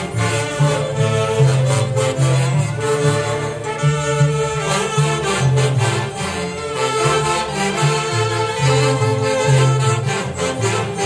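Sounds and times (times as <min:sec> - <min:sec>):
saxophone section playing melody: 0:00.0 - 0:11.0.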